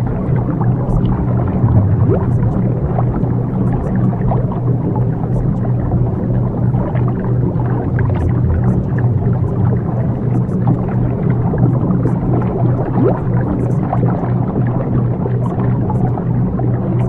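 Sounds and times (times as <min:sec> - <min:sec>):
dense restless sound layer: 0:00.0 - 0:17.0
low drone of held tones: 0:00.0 - 0:17.0.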